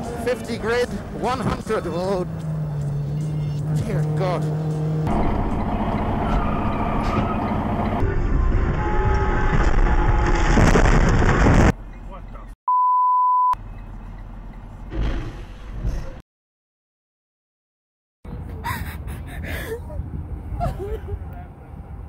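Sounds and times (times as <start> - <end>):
vehicle and road noise: 0.0 - 12.6, 13.6 - 16.2, 18.3 - 22.0
censor bleep: 12.7 - 13.6
trucks colliding: 14.8 - 16.2.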